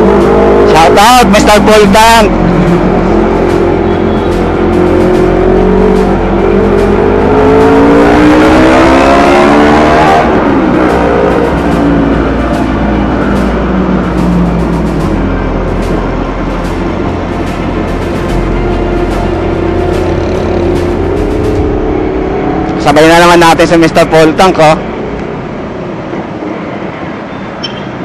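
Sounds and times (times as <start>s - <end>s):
motorcycle engine accelerating: 0.0s - 23.9s
road and wind noise: 0.0s - 28.0s.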